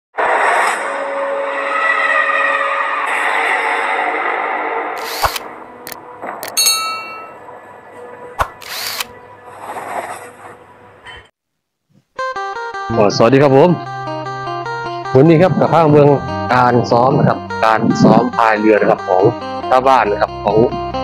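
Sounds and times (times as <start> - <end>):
sharp clicks: 5.0 - 6.7, 8.4 - 9.1
bright ringing chime: 6.4 - 7.4.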